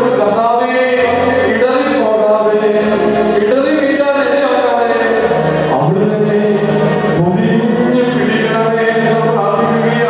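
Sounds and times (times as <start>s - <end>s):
man singing a devotional chant: 0.0s - 10.0s.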